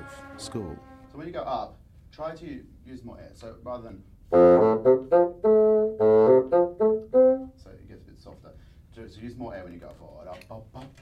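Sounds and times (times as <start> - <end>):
bassoon playing: 0.0 - 1.3, 4.3 - 7.6.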